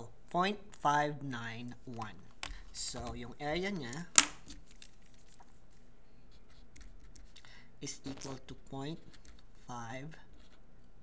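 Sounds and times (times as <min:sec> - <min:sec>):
marker pen writing on paper: 0:06.3 - 0:07.4, 0:10.3 - 0:10.7.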